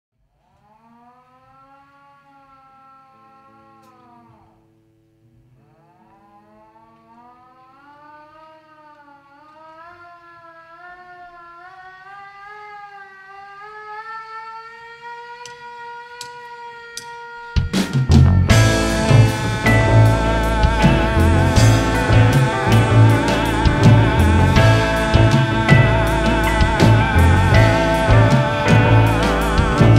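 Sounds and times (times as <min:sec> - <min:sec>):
siren-like wail: 0:00.4 - 0:04.6, 0:05.6 - 0:29.9.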